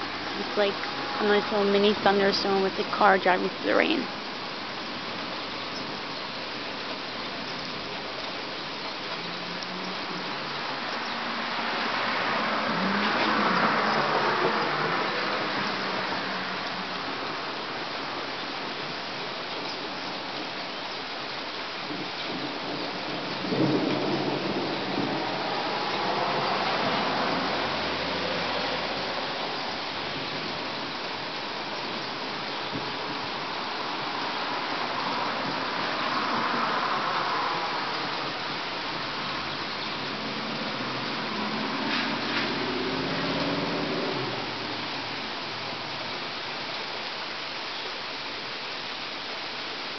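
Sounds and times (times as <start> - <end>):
steady rain: 0.0 - 49.9
tyres hissing on wet road: 0.0 - 49.9.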